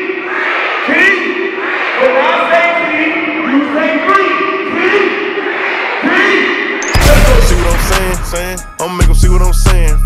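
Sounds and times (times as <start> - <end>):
man shouting into microphone: 0.0 - 5.4, 6.0 - 8.3
crowd noise: 0.0 - 8.6.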